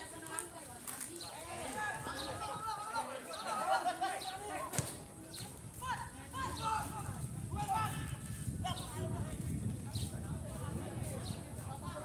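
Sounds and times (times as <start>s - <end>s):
voices calling and shouting: 0.0s - 12.0s.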